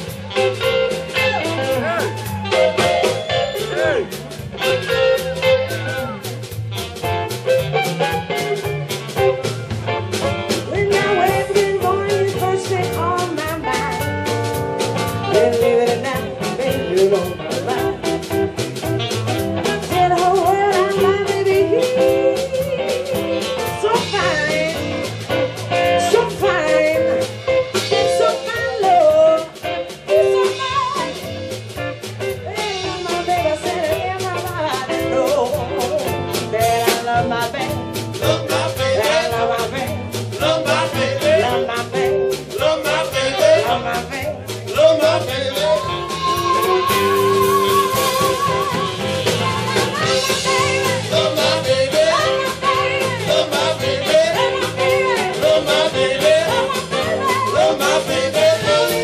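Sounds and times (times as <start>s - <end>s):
live band playing: 0.0s - 59.0s
saxophone: 0.0s - 59.0s
woman singing: 10.5s - 14.1s, 15.2s - 18.3s, 19.6s - 25.2s, 25.8s - 31.5s, 32.4s - 59.0s.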